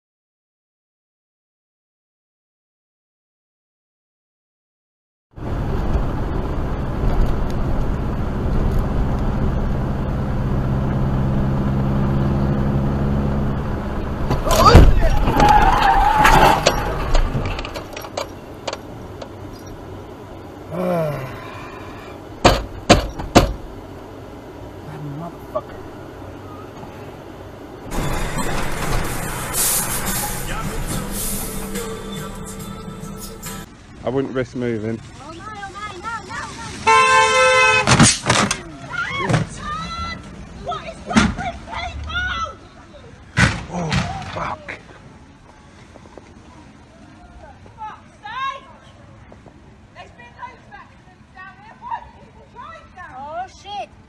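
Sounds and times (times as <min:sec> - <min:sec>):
road noise: 0:05.3 - 0:54.0
car engine running: 0:16.7 - 0:34.0
sharp knocks: 0:22.4 - 0:23.6
loud crash impact: 0:27.9 - 0:31.8.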